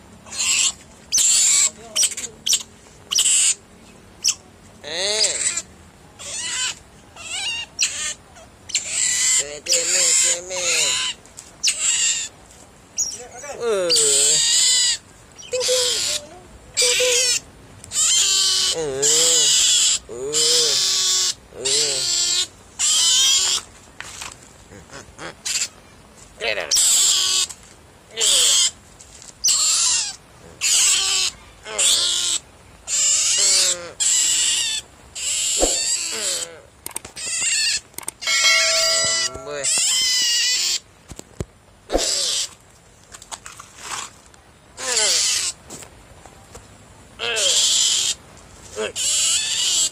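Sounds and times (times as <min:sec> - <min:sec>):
young otter squealing: 0:00.2 - 0:03.6, 0:04.2 - 0:12.3, 0:13.0 - 0:13.3, 0:13.9 - 0:23.6, 0:24.8 - 0:25.8, 0:26.7 - 0:27.5, 0:28.2 - 0:28.8, 0:29.4 - 0:36.6, 0:37.2 - 0:40.8, 0:41.9 - 0:42.6, 0:44.8 - 0:45.6, 0:47.2 - 0:48.2, 0:48.8 - 0:49.9.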